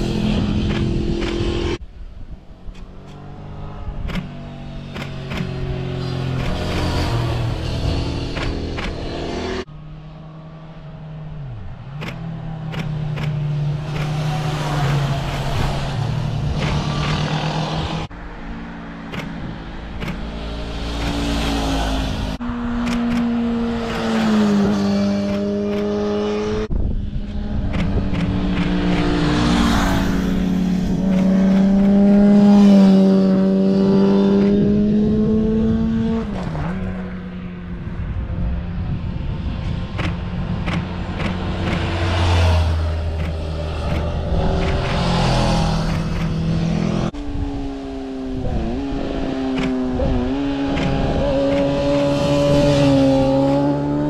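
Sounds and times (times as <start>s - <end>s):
motorcycles riding past: 3.1s - 54.0s.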